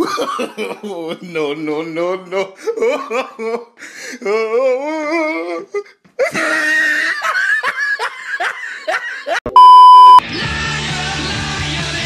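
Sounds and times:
man laughing: 0:00.0 - 0:03.7, 0:06.2 - 0:09.4
loud steady beep tone: 0:09.5 - 0:10.2.

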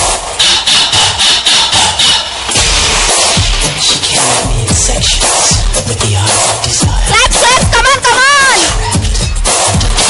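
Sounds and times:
low bass beat: 0:00.0 - 0:08.0
electronic dance music: 0:00.0 - 0:10.0.

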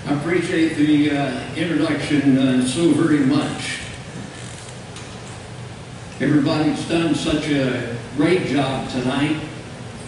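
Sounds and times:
low hiss of hall room noise: 0:00.0 - 0:10.0.

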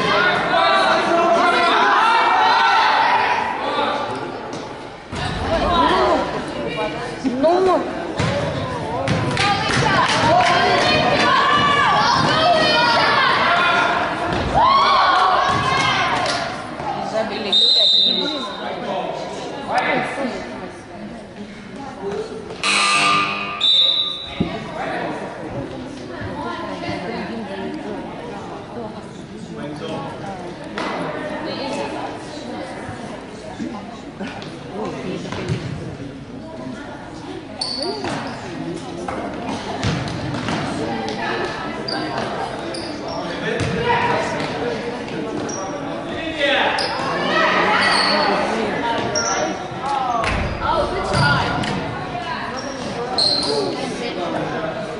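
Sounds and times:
basketballs bouncing on gym floor: 0:39.8 - 0:40.6.

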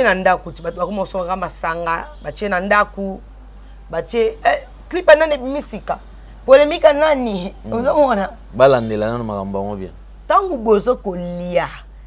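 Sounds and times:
woman speaking: 0:00.0 - 0:03.2, 0:03.9 - 0:08.4, 0:10.3 - 0:11.9.

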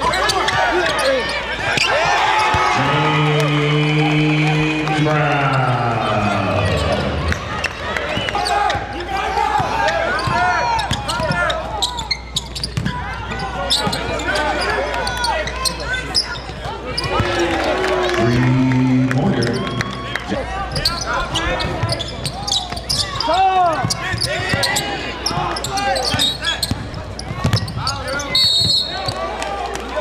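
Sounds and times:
sneakers squeaking on court: 0:00.0 - 0:02.7, 0:09.6 - 0:17.3, 0:20.7 - 0:29.2
basketball bouncing: 0:12.6 - 0:13.0, 0:26.1 - 0:27.8.

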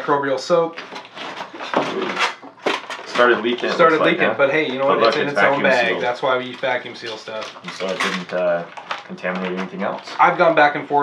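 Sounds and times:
plastic packaging crinkling: 0:06.4 - 0:10.0.

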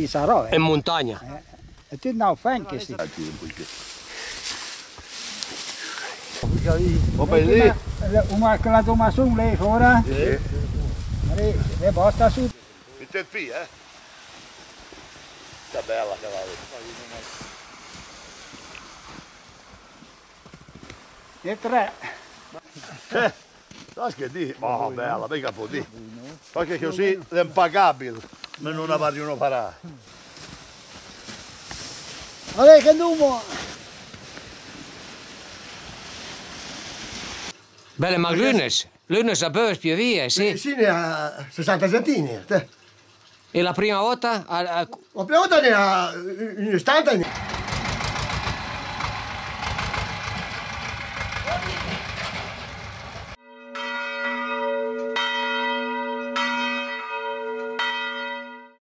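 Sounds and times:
soft crunches in snow: 0:02.8 - 0:08.8, 0:10.9 - 0:25.0, 0:25.6 - 0:37.6
small tractor engine running: 0:47.2 - 0:53.4
church bell tolling: 0:53.4 - 0:58.8.

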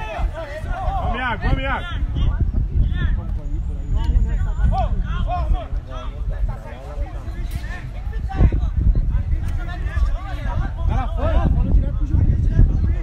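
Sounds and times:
people calling out: 0:00.0 - 0:03.2
steady low rumble: 0:00.0 - 0:13.0.

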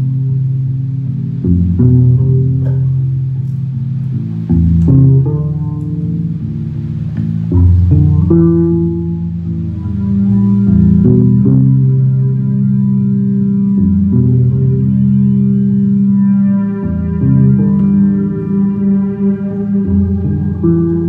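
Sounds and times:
electric bass guitar: 0:00.0 - 0:21.0.

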